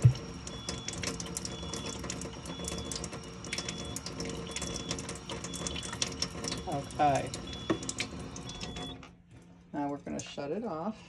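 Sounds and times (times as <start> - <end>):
thin water stream filling glass jar: 0.0 - 8.9
water running into steel sink: 0.0 - 9.1
steady machine hum: 0.0 - 11.0.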